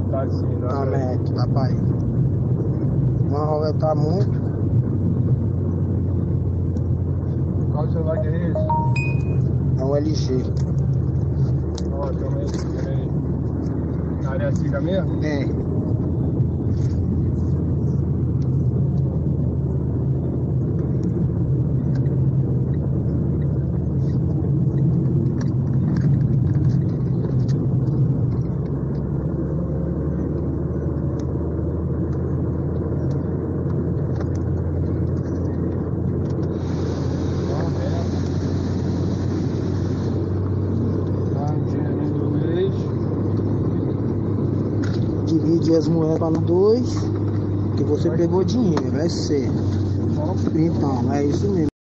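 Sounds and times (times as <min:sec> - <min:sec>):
engine and road rumble: 0:00.0 - 0:51.7
hiss: 0:36.5 - 0:40.2.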